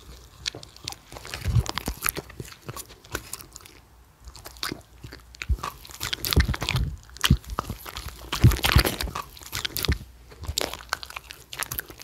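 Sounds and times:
dog chewing food: 0.0 - 12.0.

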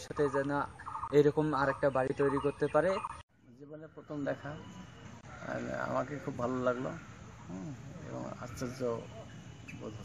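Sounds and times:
man speaking: 0.0 - 4.7, 5.3 - 10.0.

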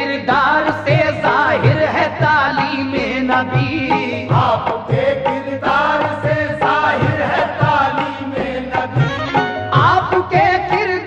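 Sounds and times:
men singing devotional song: 0.0 - 11.0
steady drum beat: 0.9 - 11.0.

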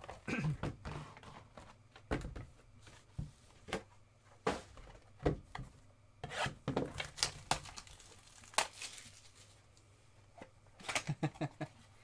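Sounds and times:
cardboard packaging being opened: 6.9 - 9.6.

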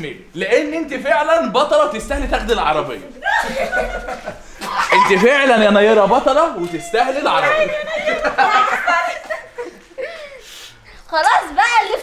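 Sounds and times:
voices: 1.9 - 12.0.

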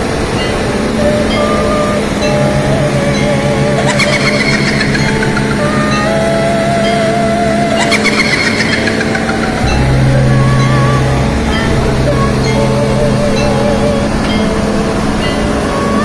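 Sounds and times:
excavator diesel engine running: 0.0 - 15.8
background music: 0.0 - 16.0.

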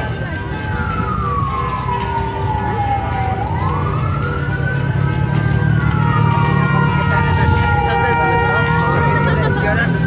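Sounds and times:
low street noise rumble: 0.0 - 10.0
wailing siren: 0.0 - 10.0.

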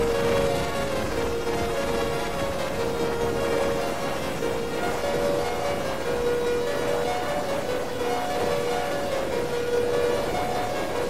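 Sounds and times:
crackling noisy texture: 0.0 - 11.0
synthesizer drone music: 0.0 - 11.0.

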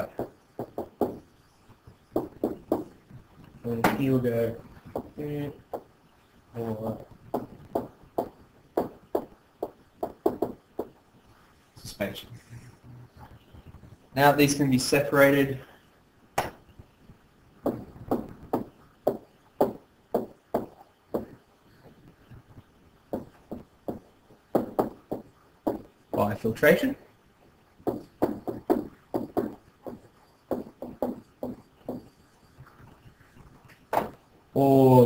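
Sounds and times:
stylus tapping on tablet screen: 0.0 - 3.1, 4.8 - 5.9, 7.3 - 11.0, 17.6 - 21.4, 23.1 - 26.3, 27.8 - 33.0.

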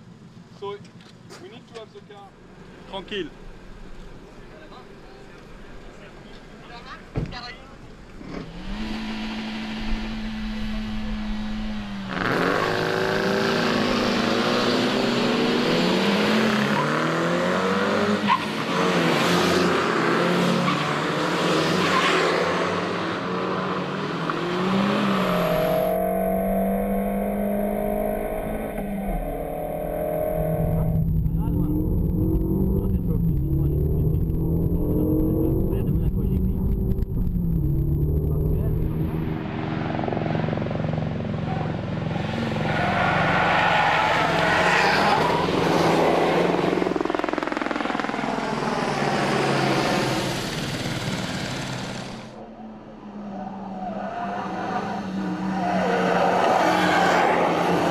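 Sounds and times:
car engine revving on a racetrack: 8.2 - 57.9.

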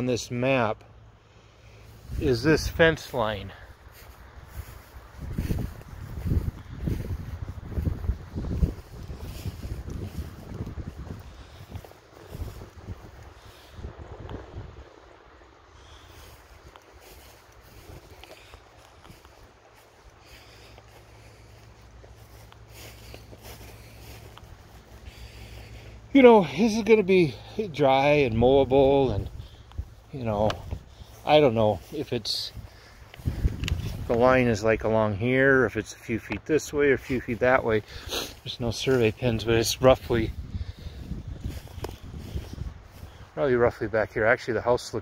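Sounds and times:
wind buffeting microphone: 1.9 - 43.9.

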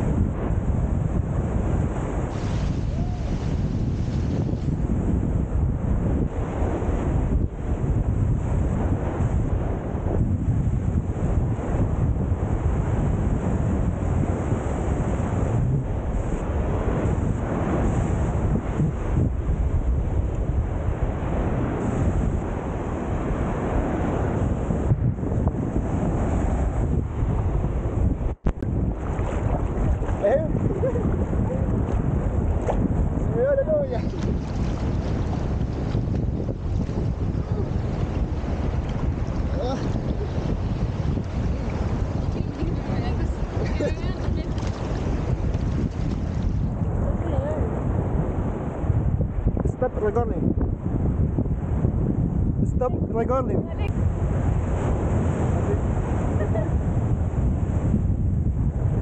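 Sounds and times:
wind rumbling on microphone: 0.0 - 59.0
small waves breaking: 1.7 - 4.9, 28.7 - 32.9, 33.7 - 47.8.

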